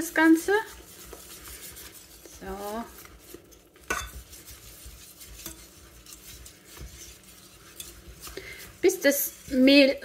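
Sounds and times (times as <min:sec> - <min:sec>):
whisk scraping dough in pot: 0:00.0 - 0:10.0.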